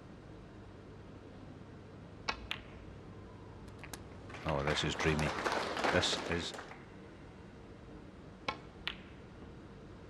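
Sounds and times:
snooker balls clicking: 0:03.6 - 0:04.7, 0:08.4 - 0:09.1.

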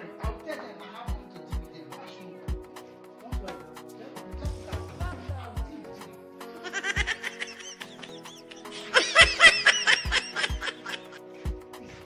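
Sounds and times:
background music with beat: 0:00.0 - 0:12.0
high-pitched laughter: 0:06.6 - 0:11.2.

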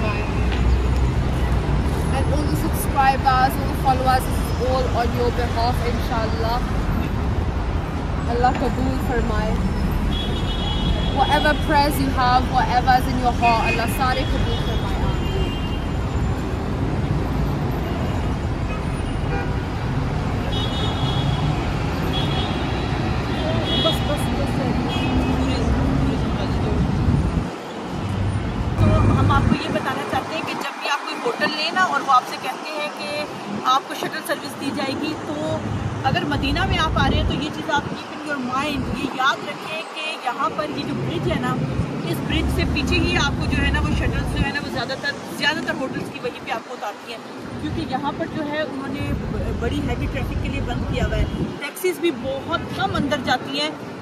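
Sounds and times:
low traffic rumble: 0:00.0 - 0:54.0.

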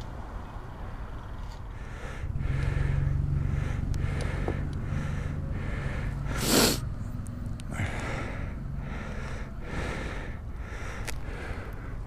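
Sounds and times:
steady low rumble: 0:00.0 - 0:12.0
person breathing out sharply: 0:01.8 - 0:06.9.

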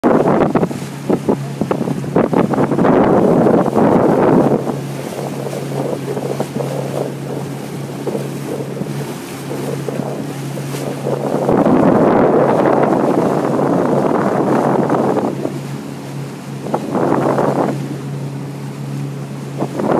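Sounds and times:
boat motor humming: 0:00.0 - 0:19.9
wind buffeting microphone: 0:00.0 - 0:19.9.

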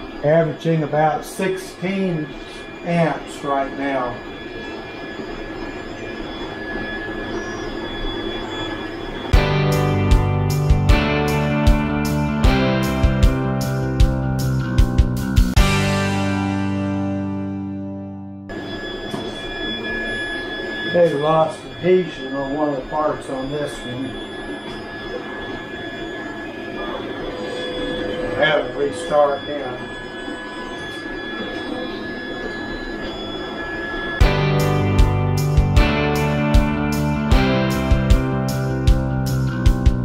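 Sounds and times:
whir of fans and motors: 0:00.0 - 0:09.4, 0:18.6 - 0:34.2
faint steady tones: 0:00.0 - 0:14.7, 0:18.4 - 0:40.0
background music with guitar and beat: 0:09.4 - 0:18.4, 0:34.2 - 0:40.0.

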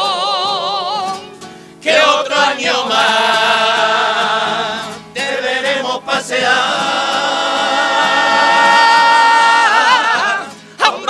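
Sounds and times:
men singing together: 0:01.8 - 0:11.0.

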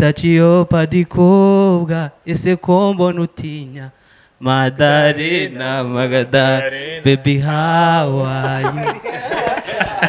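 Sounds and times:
man singing into a microphone: 0:00.0 - 0:08.9.

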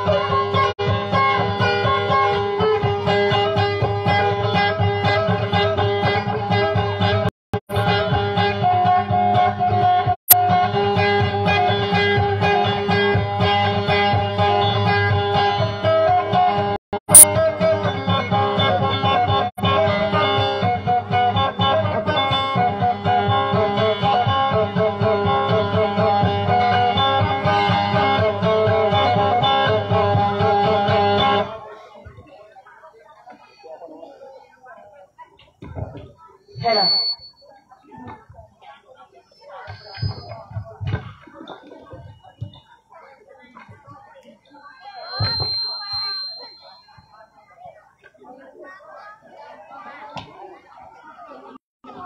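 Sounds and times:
acoustic guitar melody: 0:00.0 - 0:31.6.

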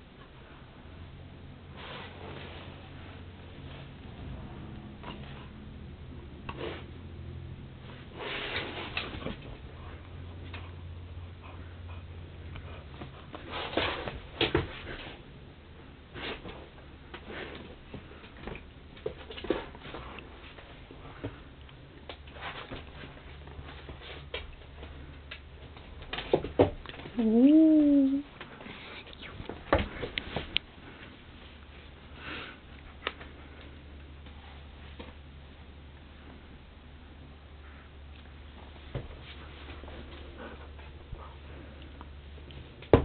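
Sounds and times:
faint low hum: 0:00.0 - 0:43.0.

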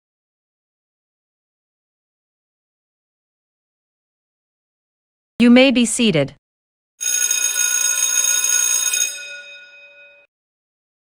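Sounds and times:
bell ringing: 0:07.0 - 0:10.3.

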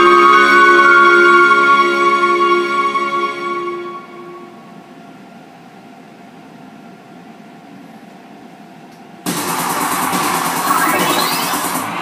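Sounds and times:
loud electronic music: 0:09.3 - 0:12.0
sound system hum: 0:09.3 - 0:12.0.

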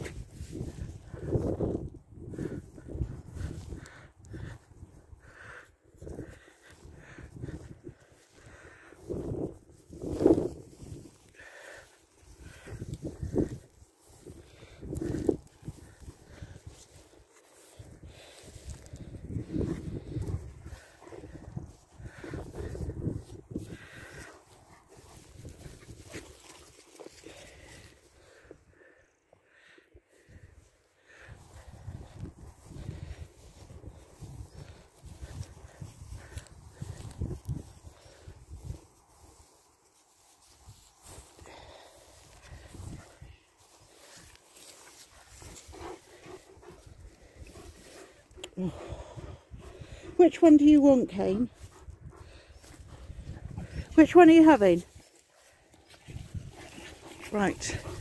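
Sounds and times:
wind rumble: 0:12.4 - 0:26.1.

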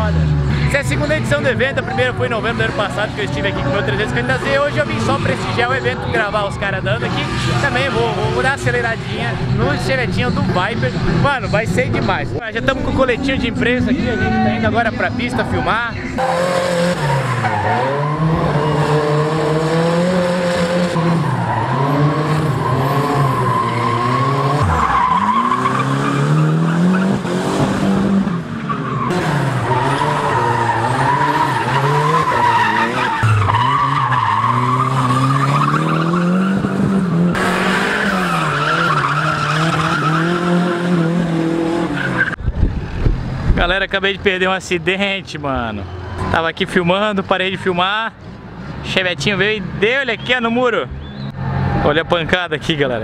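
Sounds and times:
tyres skidding and squealing: 0:00.0 - 0:53.0
car engine revving hard: 0:16.2 - 0:43.6.

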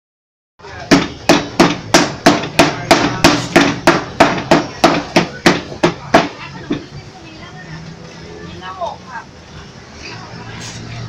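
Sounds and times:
wooden mallets pounding on wood: 0:00.8 - 0:06.9.

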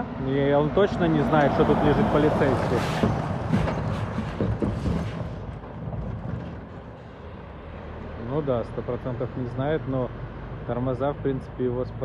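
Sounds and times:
truck driving past: 0:00.0 - 0:12.0.

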